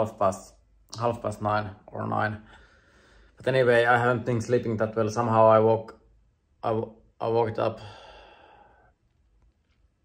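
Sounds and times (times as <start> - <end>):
man sighing: 7.8 - 8.7.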